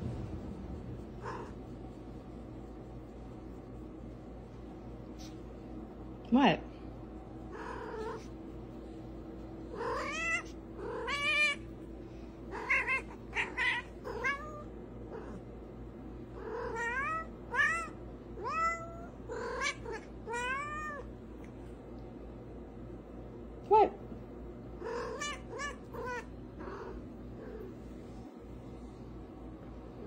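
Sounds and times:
cat meowing: 9.7 - 11.6, 12.5 - 15.4, 16.4 - 21.1, 24.8 - 27.7.

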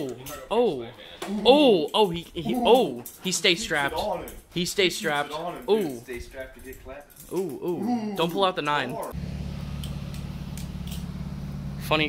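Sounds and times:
car engine idling: 9.2 - 12.0.

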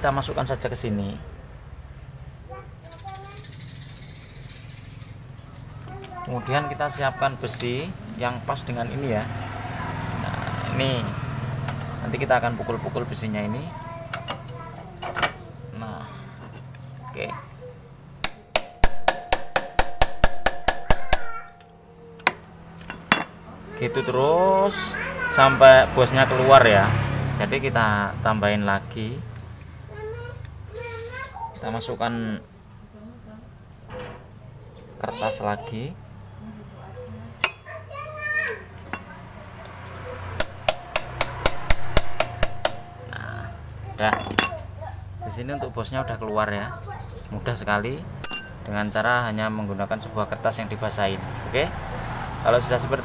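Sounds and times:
hammer striking steel rod: 18.2 - 21.3, 40.4 - 42.9, 48.2 - 48.7.

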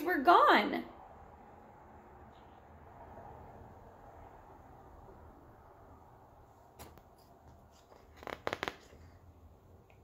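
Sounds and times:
book pages rustling: 6.8 - 9.2.

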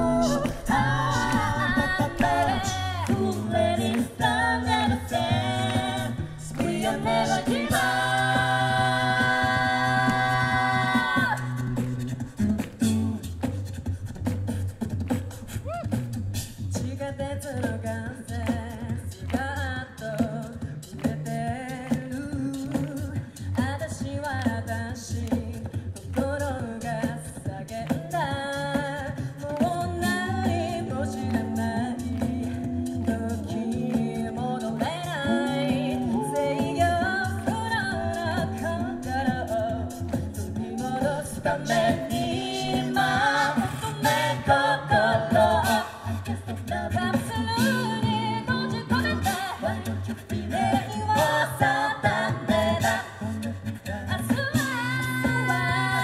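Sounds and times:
low sung bass line: 0.0 - 15.2, 26.2 - 56.0
a cappella vocal group singing: 0.0 - 56.0.

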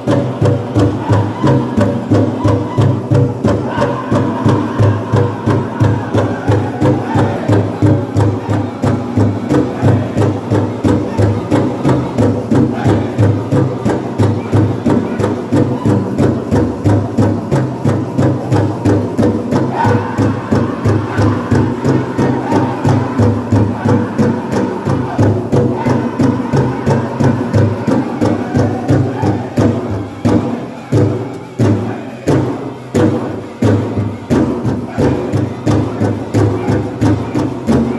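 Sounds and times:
big drum beating: 0.0 - 37.9
singers chanting: 0.0 - 37.9.

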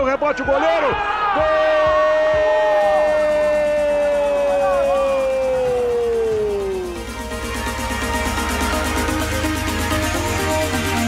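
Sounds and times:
electronic music: 0.0 - 11.0.

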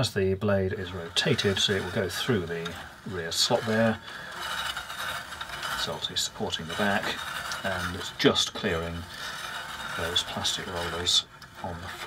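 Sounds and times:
bandsaw blade turning by hand: 0.7 - 12.0.

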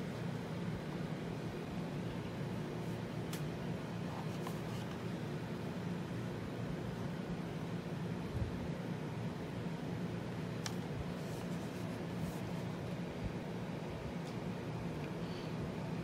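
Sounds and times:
room hum and hiss: 0.0 - 16.0.

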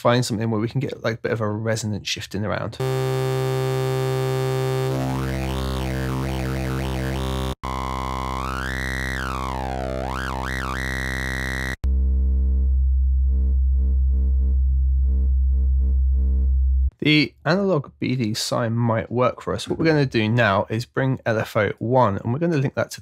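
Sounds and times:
sustained synth bass note: 2.8 - 16.9.

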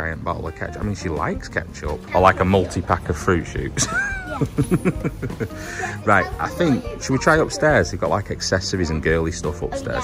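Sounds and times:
girl laughing: 3.8 - 6.0.

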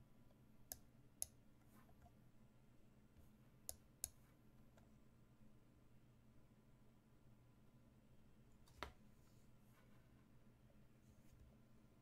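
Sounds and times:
computer mouse clicks: 3.7 - 4.2.

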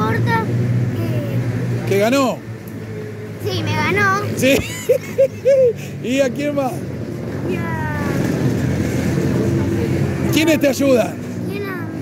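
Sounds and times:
kart engines running: 0.0 - 12.0.

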